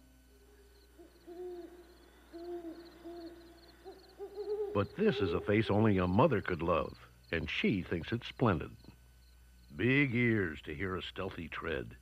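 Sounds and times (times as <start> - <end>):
faint high chirping: 0.3 - 7.4
animal hooting calls: 1.0 - 6.0.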